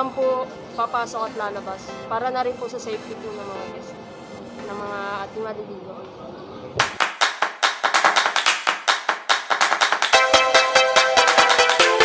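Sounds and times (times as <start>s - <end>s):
electronic music percussion: 6.8s - 12.0s.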